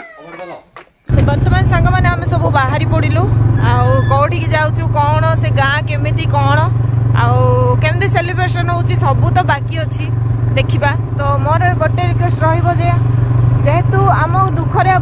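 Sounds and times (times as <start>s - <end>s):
motorcycle engine drone: 1.1s - 15.0s
woman talking: 1.1s - 15.0s.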